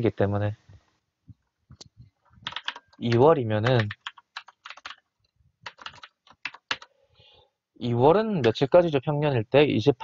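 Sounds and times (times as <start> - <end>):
typing on computer keyboard: 2.4 - 6.9.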